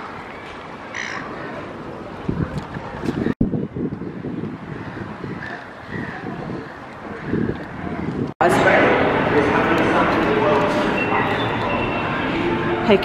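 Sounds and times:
waterfront noise: 0.0s - 13.0s
wind buffeting microphone: 1.2s - 8.4s.

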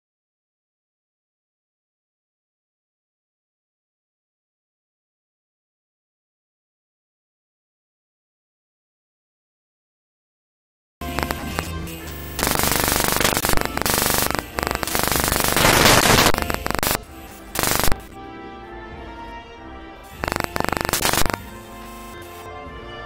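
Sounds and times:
harsh crackling noise bursts: 11.0s - 18.1s, 20.2s - 22.5s.

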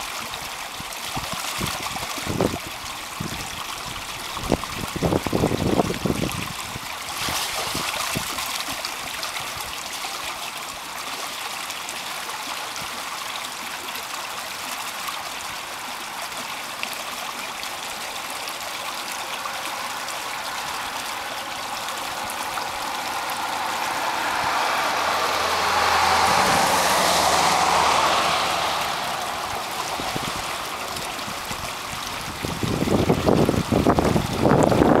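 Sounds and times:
creek water rushing and gurgling: 0.0s - 35.0s
low hum: 17.5s - 33.2s.

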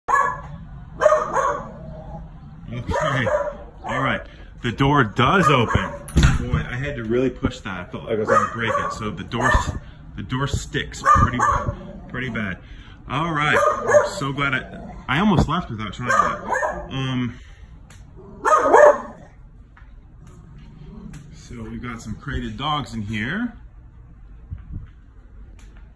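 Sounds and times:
dog barking: 0.1s - 2.1s, 2.8s - 4.0s, 5.3s - 6.1s, 8.2s - 9.8s, 11.0s - 11.9s, 13.5s - 14.3s, 16.0s - 16.9s, 18.4s - 19.3s.

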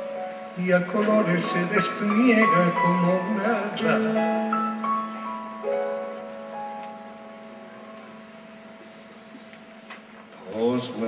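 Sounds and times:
soft held keyboard chord: 0.0s - 11.0s.

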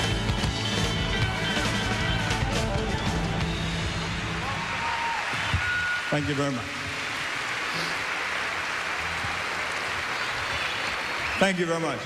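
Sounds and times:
live rock band playing: 0.0s - 4.6s
audience cheering and applause: 1.2s - 12.0s.

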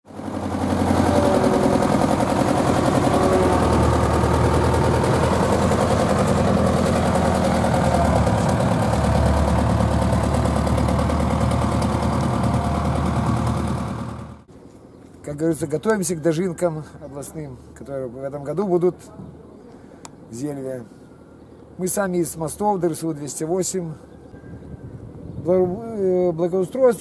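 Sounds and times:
road roller engine knocking: 0.1s - 14.5s.

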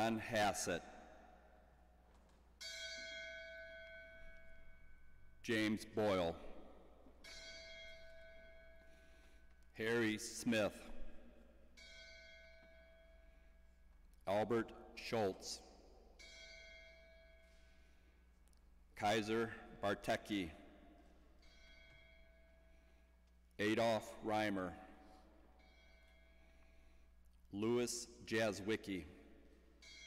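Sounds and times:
bell ringing: 2.6s - 10.9s, 11.7s - 13.7s, 16.2s - 17.9s, 21.0s - 23.0s, 29.8s - 30.0s.

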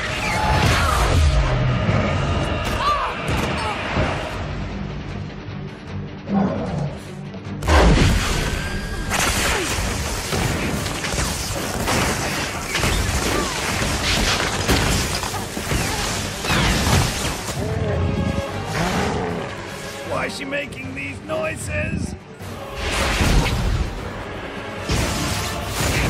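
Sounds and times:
film music: 0.0s - 26.0s.

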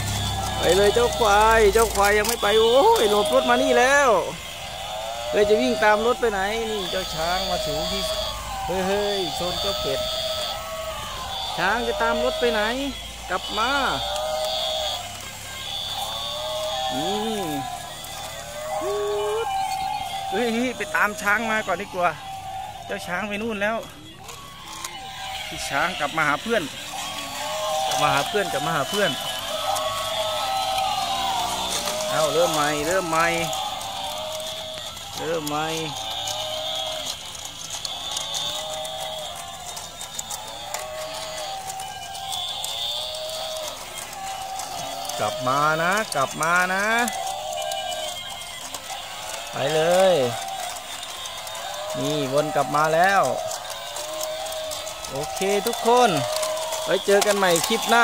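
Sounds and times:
electronic toy tune: 0.0s - 58.0s
plastic gears clicking: 0.0s - 58.0s
synthesized mooing calls: 0.0s - 58.0s.

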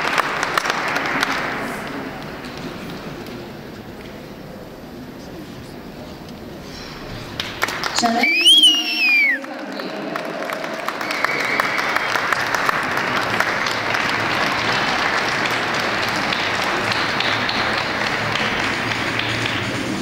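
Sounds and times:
audience applauding: 0.0s - 3.0s, 7.4s - 20.0s.

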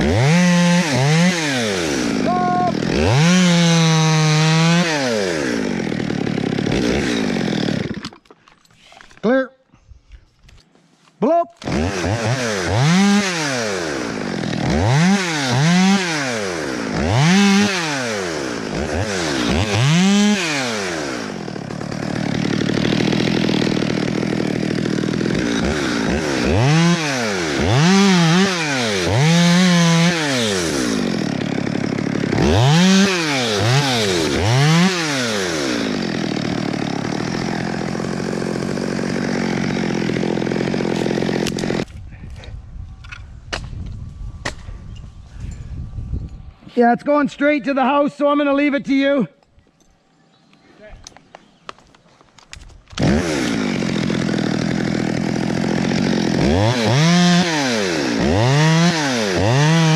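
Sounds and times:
chainsaw revving: 0.0s - 8.2s, 11.6s - 41.9s, 52.9s - 59.9s.

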